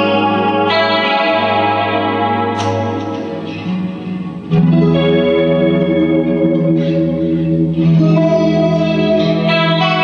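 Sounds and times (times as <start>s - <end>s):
electric guitar chords ringing: 0.0s - 10.0s.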